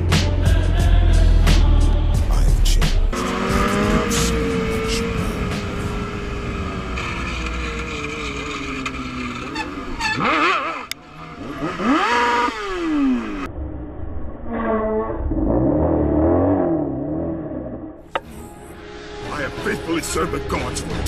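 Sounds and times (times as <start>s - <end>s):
motorcycle engine revving: 3.1s - 18.3s.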